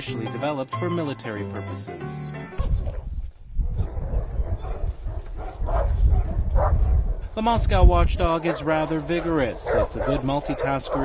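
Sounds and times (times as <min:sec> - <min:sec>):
heavy low rumble: 0:02.6 - 0:11.0
dog barking: 0:03.8 - 0:07.2, 0:08.3 - 0:11.0.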